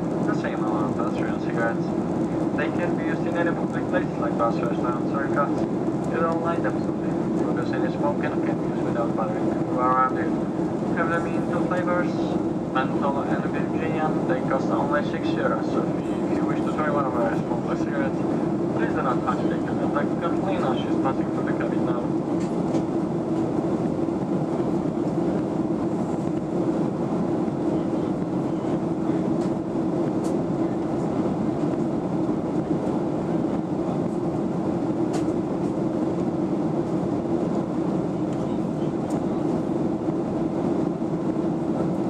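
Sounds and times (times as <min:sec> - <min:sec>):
jet engines droning: 0:00.0 - 0:42.0.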